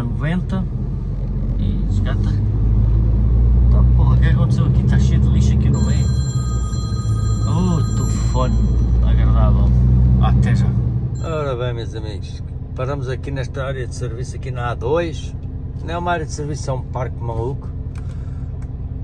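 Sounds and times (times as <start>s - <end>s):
lorry engine and tyres rumbling: 0.0s - 19.0s
faint steady high tones: 5.8s - 9.4s, 11.2s - 12.0s.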